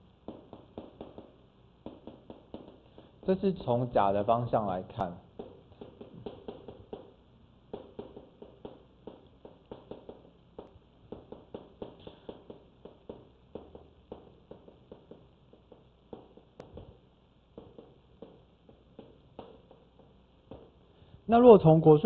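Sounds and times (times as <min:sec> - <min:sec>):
chalk writing on blackboard: 0:00.3 - 0:03.4, 0:05.0 - 0:20.9.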